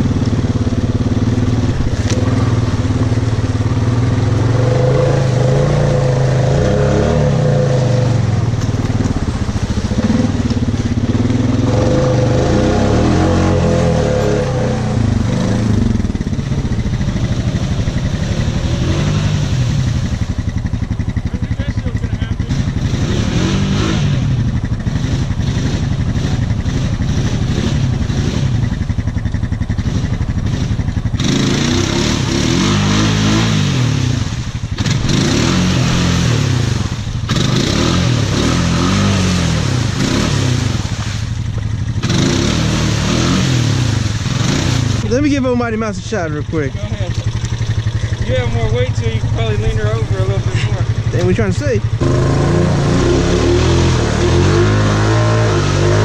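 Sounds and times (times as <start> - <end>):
atv engine revving: 0.0 - 56.0.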